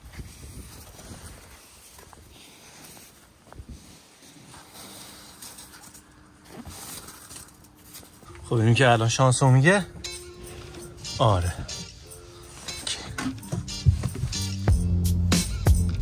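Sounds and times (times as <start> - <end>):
hand brushing snow off glass: 0.2 - 5.9.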